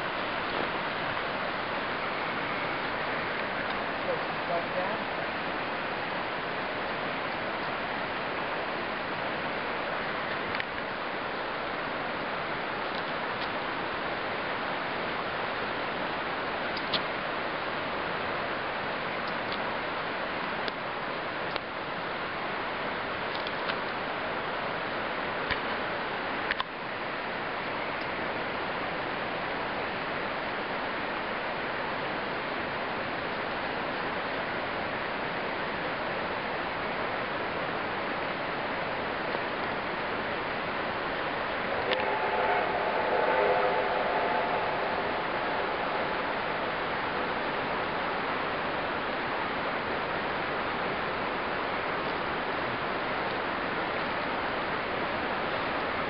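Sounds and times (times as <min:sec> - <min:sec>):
steady outdoor rushing noise: 0:00.0 - 0:56.0
distant locomotive whistle: 0:41.0 - 0:49.2.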